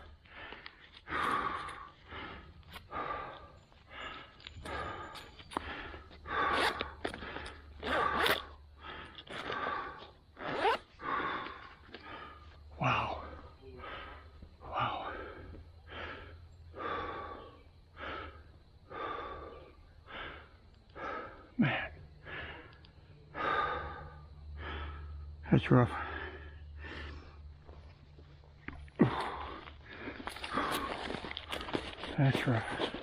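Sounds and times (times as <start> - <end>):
man breathing hard: 0.0 - 28.0, 28.6 - 33.0.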